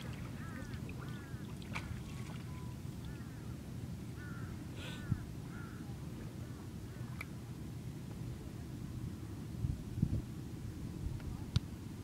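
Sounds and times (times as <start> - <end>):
birds calling: 0.0 - 3.5, 4.2 - 5.8.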